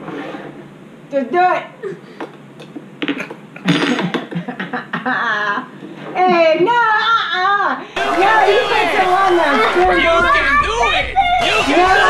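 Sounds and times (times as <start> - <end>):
people laughing: 3.9 - 5.8, 8.0 - 12.0
people exclaiming: 6.8 - 12.0.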